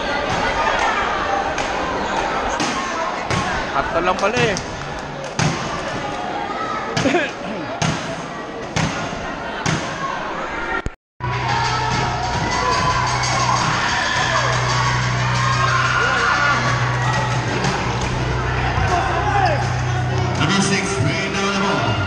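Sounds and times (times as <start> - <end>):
crowd chatter: 0.0 - 22.0
steady low crowd hum: 0.0 - 22.0.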